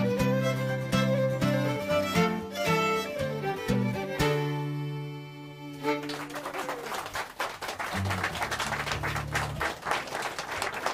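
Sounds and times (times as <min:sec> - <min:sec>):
fiddles and acoustic guitar playing: 0:00.0 - 0:06.8
applause: 0:05.9 - 0:10.9.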